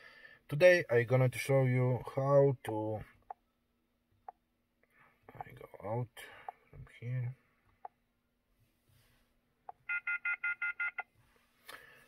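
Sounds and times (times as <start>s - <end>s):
short electronic beeps: 9.8s - 11.1s.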